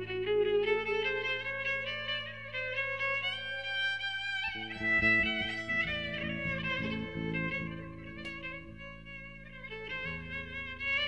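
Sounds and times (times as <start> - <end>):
plucked strings accompaniment: 0.0 - 11.0
violin bowed melody: 0.0 - 11.0.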